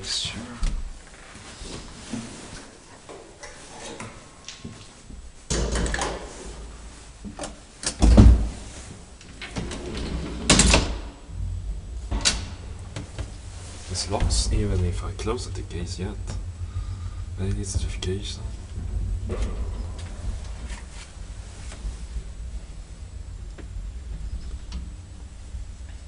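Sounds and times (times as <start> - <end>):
low steady hum: 0.0 - 26.0
elevator doors sliding: 5.5 - 26.0
elevator door bang: 9.5 - 15.7, 18.6 - 21.2.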